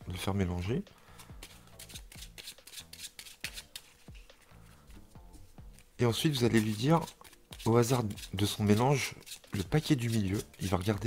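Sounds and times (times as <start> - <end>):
faint background music: 0.0 - 11.0
playing cards shuffled by hand: 1.1 - 11.0.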